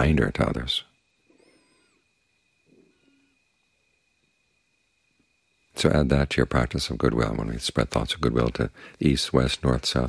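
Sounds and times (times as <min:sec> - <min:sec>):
faint steady high tone: 0:00.0 - 0:10.0
faint animal call: 0:00.6 - 0:03.9.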